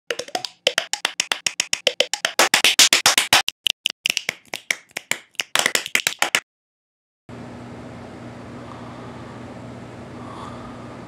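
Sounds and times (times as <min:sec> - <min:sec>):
beatboxed clicks and pops: 0:00.0 - 0:06.4.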